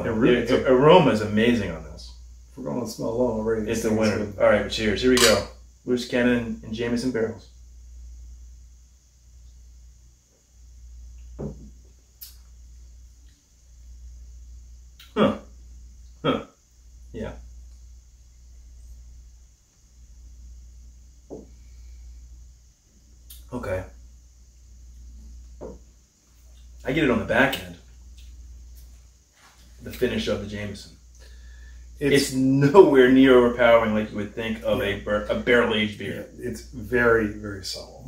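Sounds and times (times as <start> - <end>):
low electrical hum: 0.0 - 38.0.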